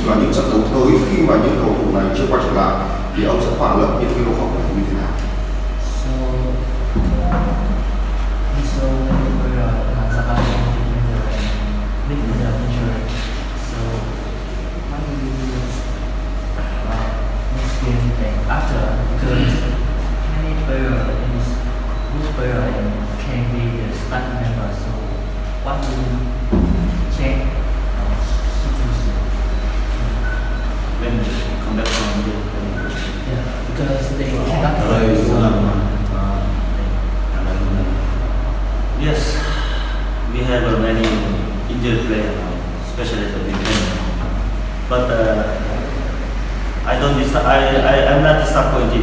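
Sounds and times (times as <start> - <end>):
man speaking: 0.0 - 49.0
steady low hum: 0.0 - 49.0
faint male speech: 8.4 - 38.3, 39.0 - 49.0.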